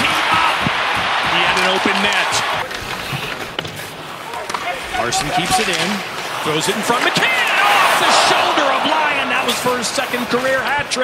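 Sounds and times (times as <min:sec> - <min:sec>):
arena crowd noise: 0:00.0 - 0:11.0
hockey sticks and puck clacking: 0:00.0 - 0:11.0.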